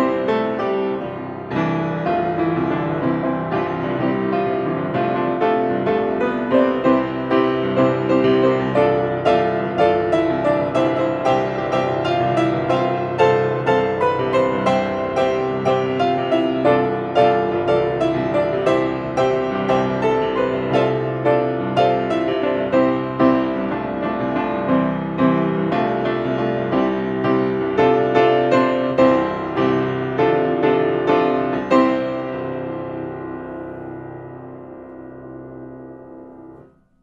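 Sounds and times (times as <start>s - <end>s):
solo grand piano: 0.0s - 37.0s.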